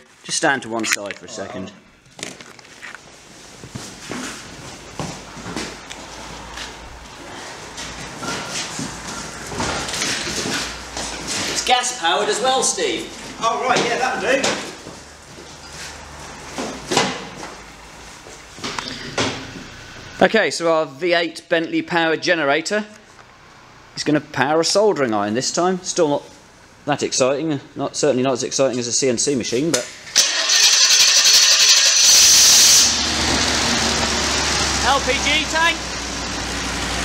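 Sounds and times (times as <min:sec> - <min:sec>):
starter motor cranking: 0:30.1 - 0:34.9.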